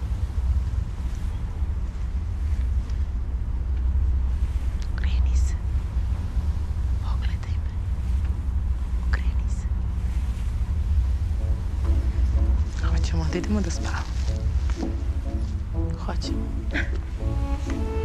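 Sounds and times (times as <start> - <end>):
ship rumble: 0.0 - 18.0
faint whispers: 4.4 - 5.8, 6.9 - 8.2, 8.9 - 10.5.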